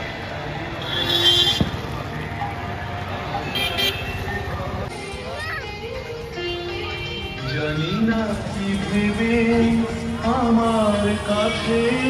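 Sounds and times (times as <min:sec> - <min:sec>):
passing vehicles: 0:00.0 - 0:12.0
music playing: 0:00.5 - 0:12.0.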